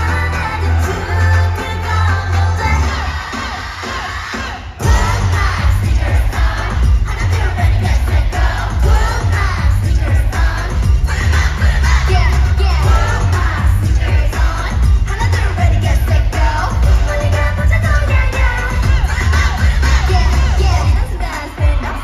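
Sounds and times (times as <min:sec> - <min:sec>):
bass-heavy pop music: 0:00.0 - 0:22.0.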